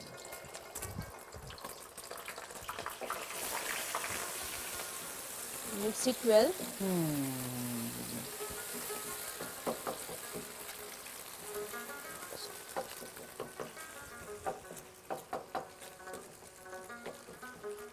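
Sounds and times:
eggs sizzling in oil: 0.0 - 17.9.

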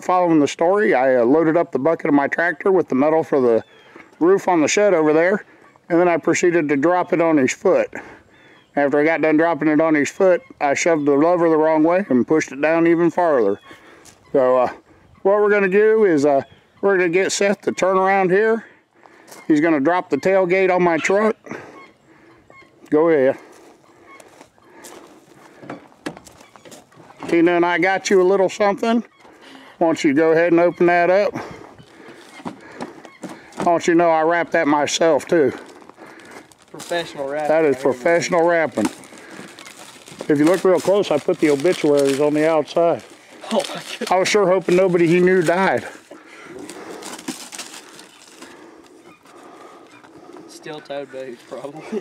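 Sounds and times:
footsteps on gravel: 13.7 - 14.2, 23.3 - 27.6, 31.4 - 34.0, 35.0 - 52.0
paper wrapping rustling and tearing: 35.6 - 46.0, 46.6 - 48.6
cardboard box handled: 46.6 - 48.4.

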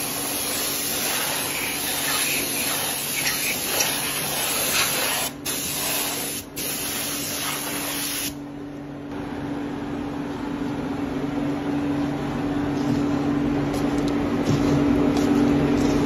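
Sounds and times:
air spray gun hissing: 0.0 - 8.4
low machine hum: 8.3 - 16.0.

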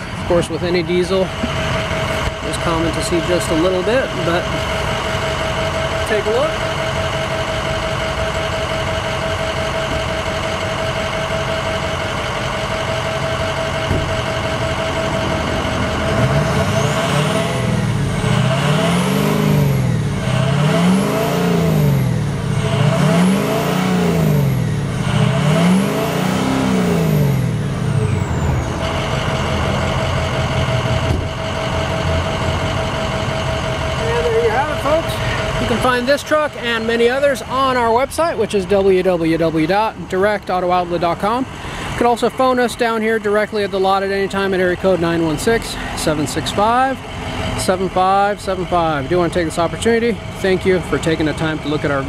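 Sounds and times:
diesel truck engine idling and revving: 0.0 - 52.0.

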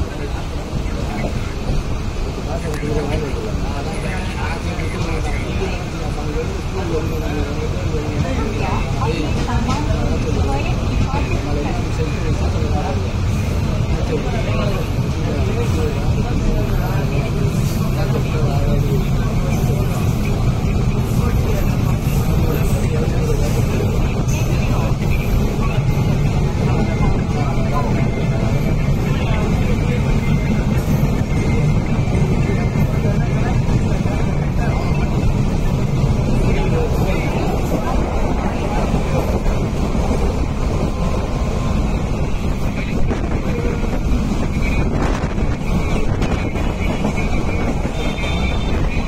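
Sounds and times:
passengers' voices: 0.0 - 49.0
train wheels rumbling on rails: 0.0 - 49.0.

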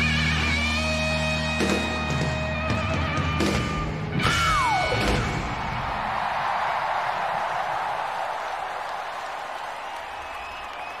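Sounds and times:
crowd cheering and applauding: 4.6 - 11.0.

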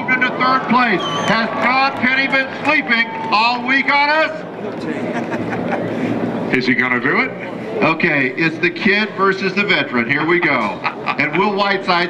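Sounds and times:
man talking: 0.0 - 5.1, 6.5 - 12.0
distant propeller aircraft engines droning: 0.0 - 12.0
open-air background noise: 0.0 - 12.0.

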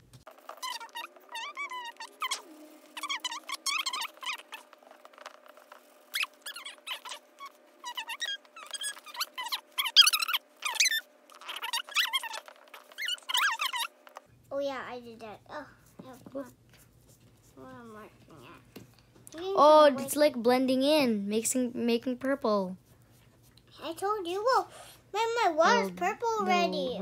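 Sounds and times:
steady hum: 0.0 - 27.0
sped-up squeaky voices: 0.4 - 14.2.

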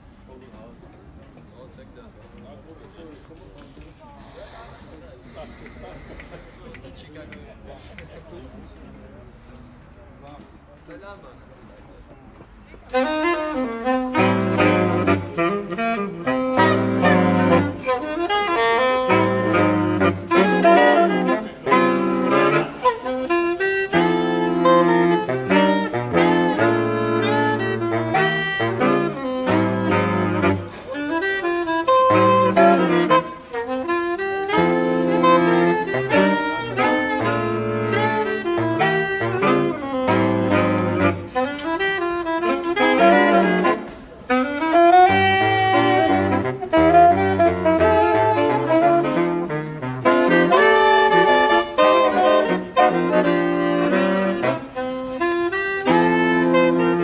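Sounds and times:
saxophone quartet playing jazz: 12.8 - 57.0.

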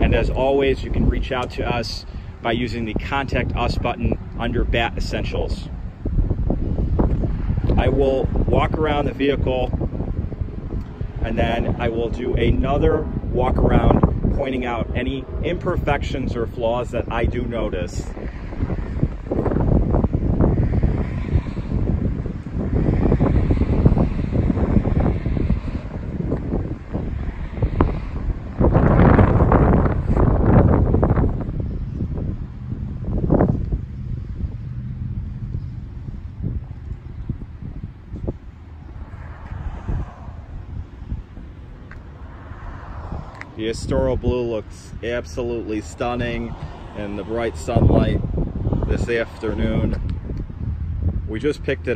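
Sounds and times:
wind buffeting microphone: 0.0 - 51.9.

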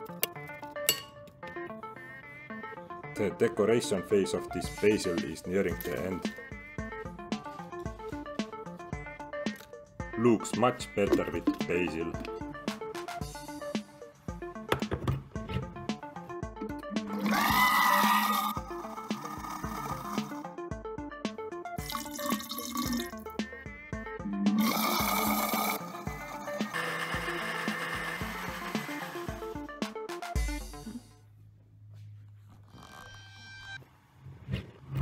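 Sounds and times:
background music with beat: 0.0 - 31.2
water pouring into jar: 11.1 - 12.4, 17.1 - 18.6, 21.8 - 23.3, 24.6 - 25.8
blender motor whining: 17.1 - 20.4, 24.5 - 29.7.

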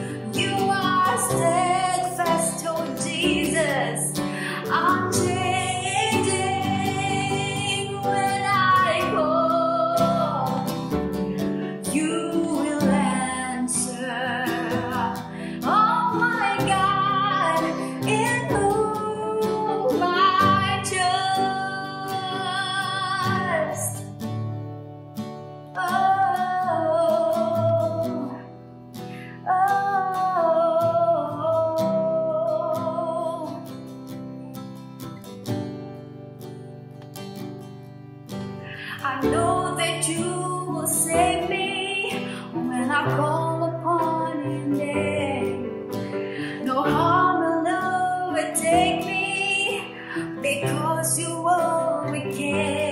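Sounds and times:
woman singing: 0.0 - 24.2, 25.7 - 33.9, 38.7 - 52.9
acoustic guitar: 0.0 - 52.9.

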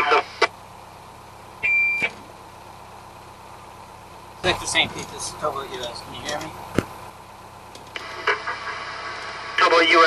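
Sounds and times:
radio static hiss: 0.0 - 0.6, 8.0 - 10.0.

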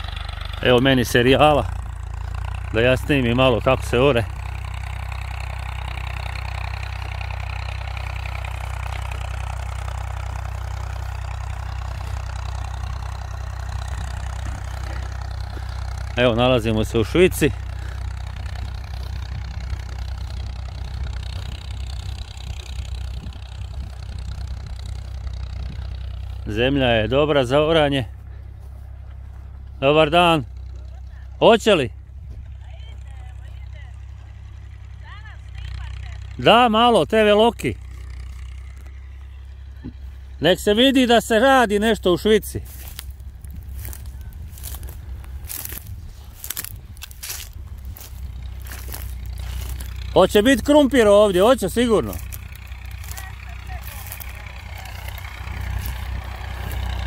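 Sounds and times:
tractor diesel engine running: 0.0 - 57.0.

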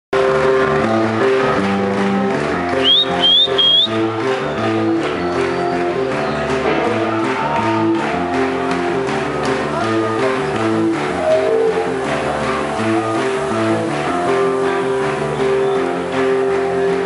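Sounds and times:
rock band playing loud: 0.2 - 17.0.

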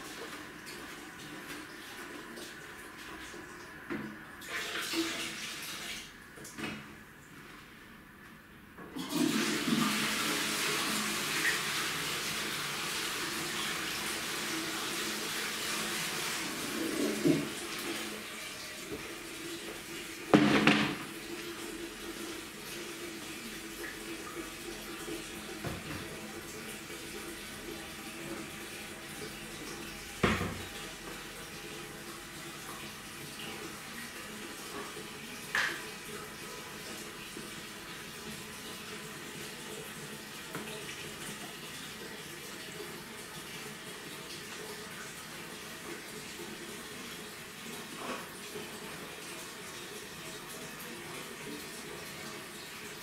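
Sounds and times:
water running from a tap: 0.0 - 6.6, 9.0 - 53.0
toilet flushing: 0.0 - 8.2, 8.8 - 53.0
cistern refilling hum: 0.0 - 53.0.

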